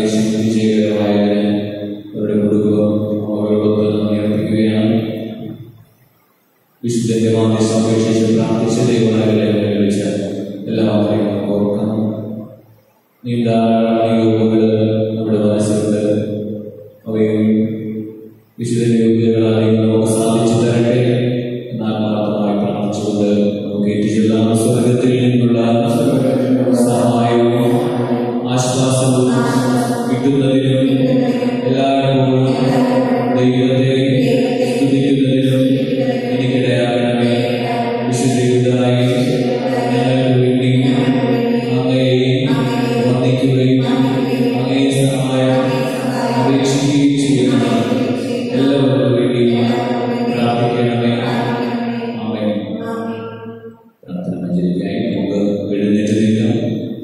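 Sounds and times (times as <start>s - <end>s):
person chanting prayer: 0.0s - 5.5s, 6.8s - 12.3s, 13.2s - 16.4s, 17.0s - 17.8s, 18.6s - 53.4s, 54.0s - 56.9s.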